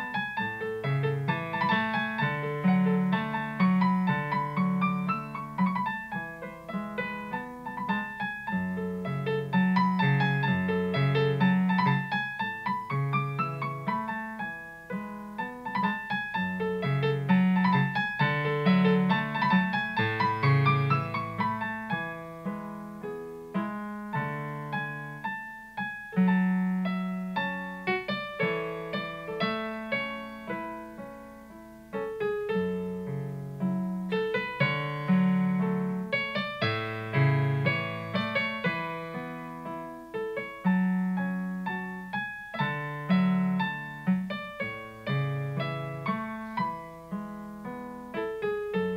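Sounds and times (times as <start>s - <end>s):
solo piano piece: 0.0s - 48.9s.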